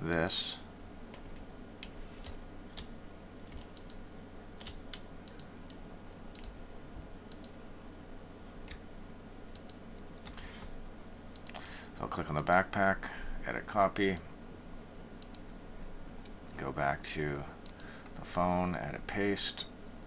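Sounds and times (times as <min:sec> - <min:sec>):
low steady hum: 0:00.0 - 0:20.0
computer mouse clicking: 0:01.1 - 0:02.9, 0:03.5 - 0:04.0, 0:04.6 - 0:06.6, 0:07.3 - 0:07.6, 0:09.5 - 0:10.4, 0:11.3 - 0:11.6, 0:15.2 - 0:15.4.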